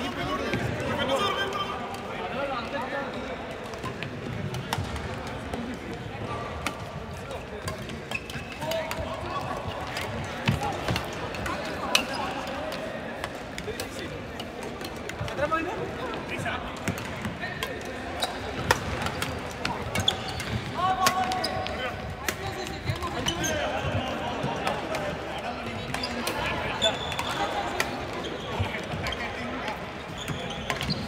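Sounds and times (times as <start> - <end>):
murmur of voices: 0.0 - 31.0.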